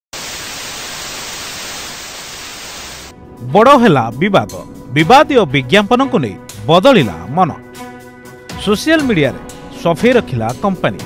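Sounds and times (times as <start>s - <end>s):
television static hiss: 0.2s - 3.1s.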